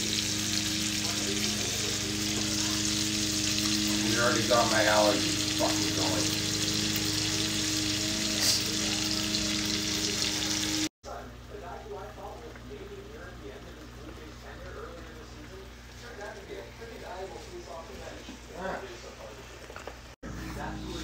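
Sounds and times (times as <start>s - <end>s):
ham sizzling in a skillet: 0.0s - 10.9s.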